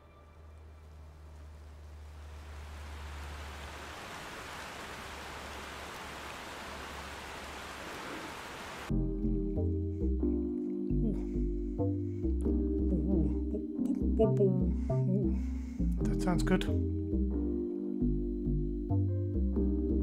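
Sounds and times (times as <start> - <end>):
rain hiss: 0.2 - 8.9.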